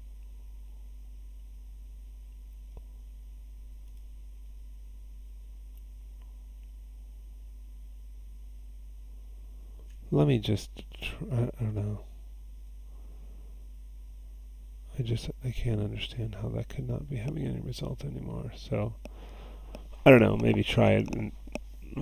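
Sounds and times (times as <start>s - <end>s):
low electrical hum: 0.0s - 22.0s
faint ticks: 2.3s - 4.6s.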